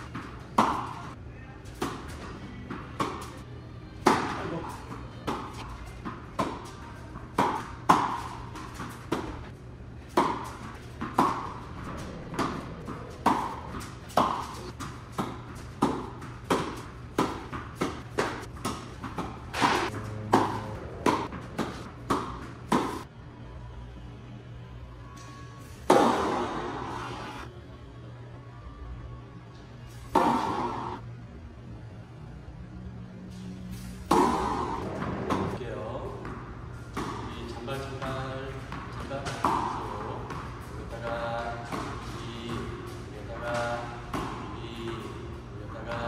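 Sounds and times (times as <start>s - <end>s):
tennis balls bouncing on hard court: 0.0s - 3.4s, 4.0s - 23.1s, 34.0s - 46.0s
tennis balls struck by rackets: 0.0s - 23.1s, 25.8s - 27.0s, 30.1s - 31.0s, 33.7s - 46.0s.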